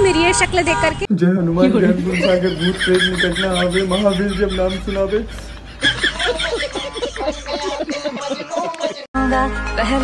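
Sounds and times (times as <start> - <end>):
men laughing heartily: 1.6 - 9.1.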